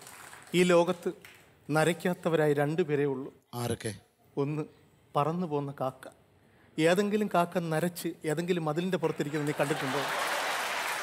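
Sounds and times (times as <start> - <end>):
man speaking: 0.6 - 6.2
audience applauding: 9.1 - 11.0.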